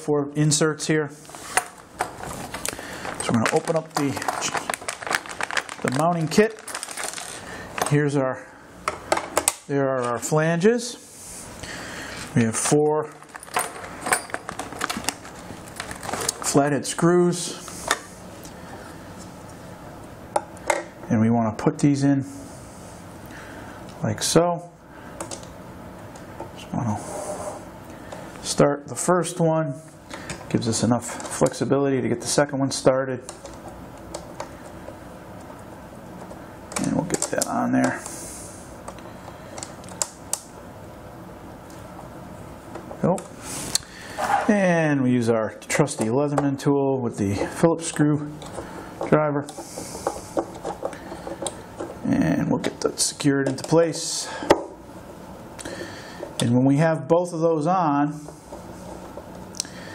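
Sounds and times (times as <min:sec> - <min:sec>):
low room noise: 0:00.0 - 0:59.9
plastic bag crinkling: 0:01.8 - 0:07.9, 0:13.0 - 0:16.6.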